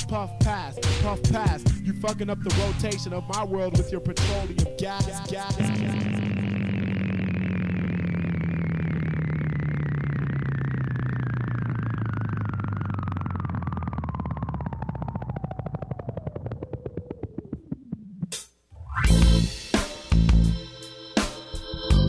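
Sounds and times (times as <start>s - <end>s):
low pulsing synth drone: 0.0s - 17.9s, 19.0s - 19.6s
synth falling sweep: 0.0s - 18.2s.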